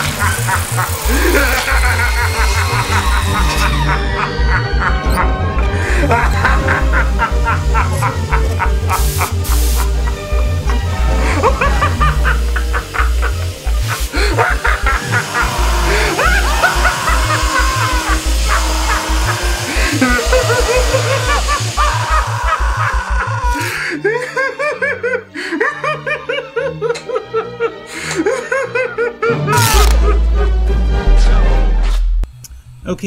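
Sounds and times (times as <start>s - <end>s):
music with heavy bass: 0.0s - 23.6s
man laughing: 0.0s - 31.5s.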